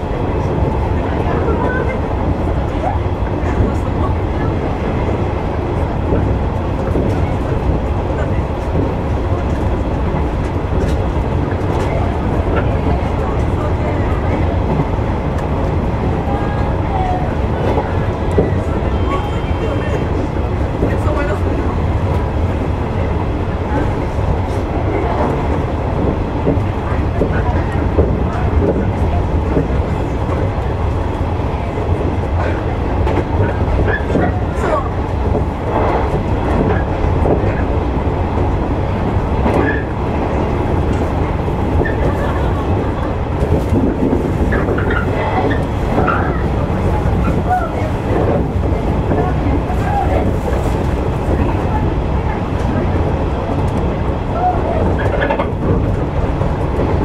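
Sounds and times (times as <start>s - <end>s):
wheels rumbling on rail: 0.0s - 57.0s.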